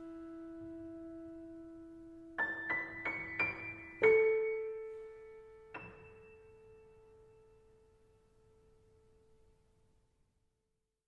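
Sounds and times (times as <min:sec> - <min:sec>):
piano note: 0:00.0 - 0:08.7.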